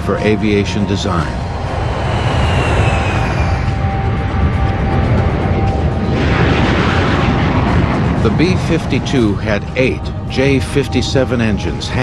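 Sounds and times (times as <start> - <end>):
jet engines roaring with high whine: 0.0 - 12.0.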